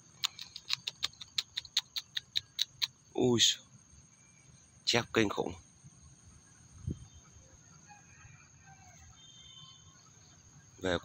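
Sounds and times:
rapid sharp high clicks: 0.1 - 3.0.

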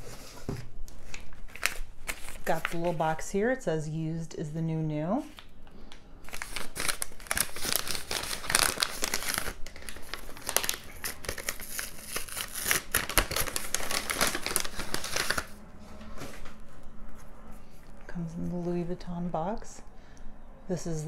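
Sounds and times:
paper wrapping crinkling: 0.9 - 3.0, 6.2 - 15.6.

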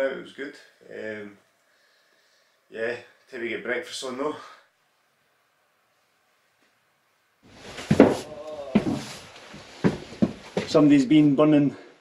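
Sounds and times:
brush scraping wooden boards: 7.5 - 10.8
sharp knocks: 7.6 - 9.2.

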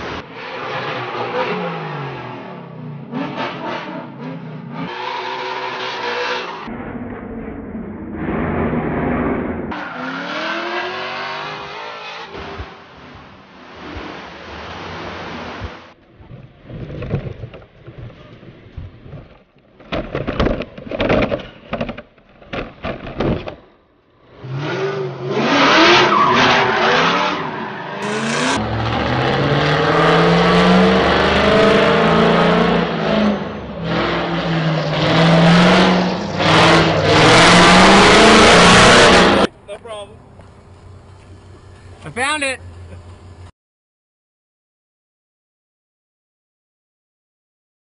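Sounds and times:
car engine revving: 0.0 - 15.8, 24.2 - 39.5
tyre noise: 15.4 - 23.7.

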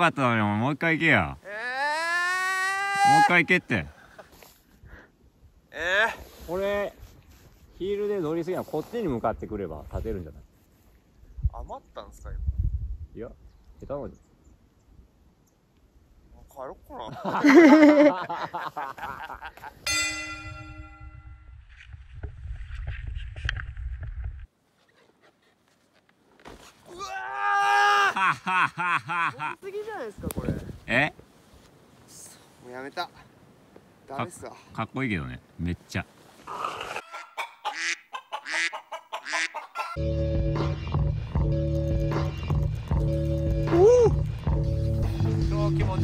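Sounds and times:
low wind rumble on microphone: 11.2 - 14.0, 30.2 - 30.9
bell-like chime ringing: 19.9 - 21.6
comic clucking animal calls: 36.5 - 40.0
background music with heavy bass: 40.0 - 46.0.

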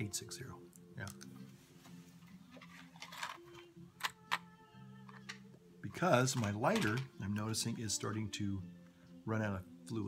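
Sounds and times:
quiet music from cassette tape: 0.0 - 10.0.

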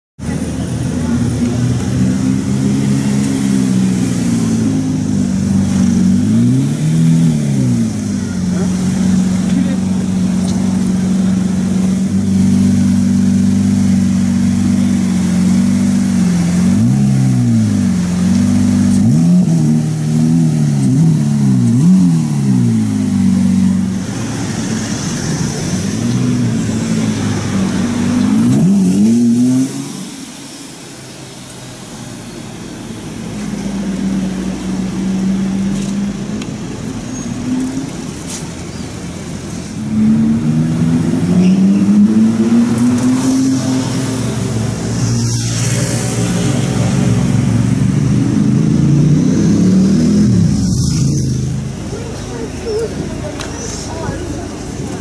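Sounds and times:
car engine idling and revving: 0.2 - 55.0.

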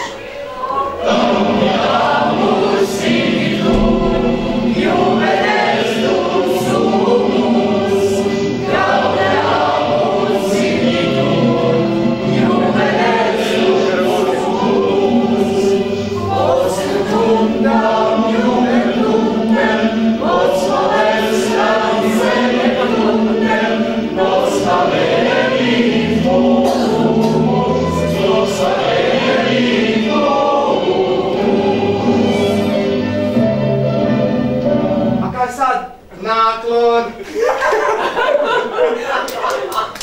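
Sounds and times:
mixed choir singing: 0.0 - 35.2.

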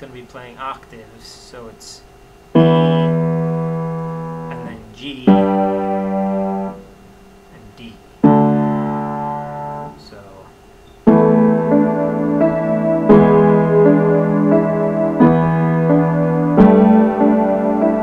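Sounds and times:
piano playing: 2.5 - 7.0, 8.2 - 10.0, 11.0 - 18.0.

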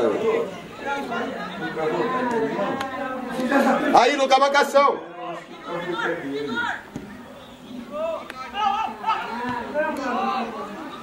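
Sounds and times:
overlapping voices shouting: 0.0 - 4.0, 5.1 - 11.0.

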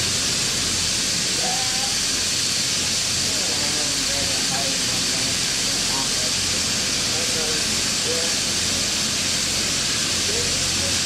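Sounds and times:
large fan blowing: 0.0 - 11.0
faint voices: 3.2 - 8.6, 10.2 - 11.0.

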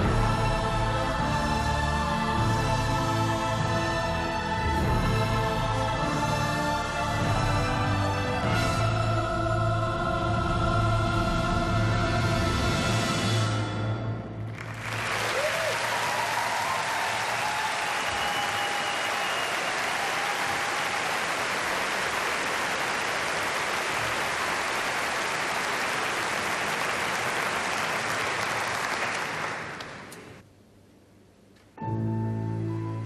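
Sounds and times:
audience applauding: 14.5 - 30.4.

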